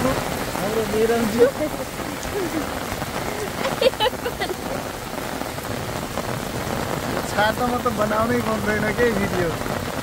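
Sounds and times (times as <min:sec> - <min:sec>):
rain pattering on umbrella: 0:00.0 - 0:10.0.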